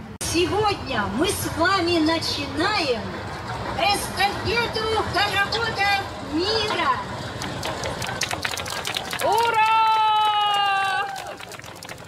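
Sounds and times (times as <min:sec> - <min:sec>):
street background noise: 0:00.0 - 0:12.0
small group clapping: 0:07.4 - 0:12.0.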